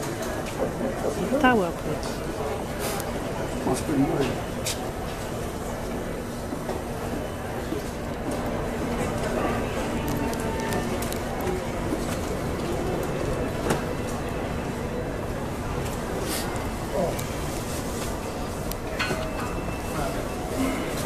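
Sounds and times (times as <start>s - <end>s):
background chatter: 0.0s - 21.0s.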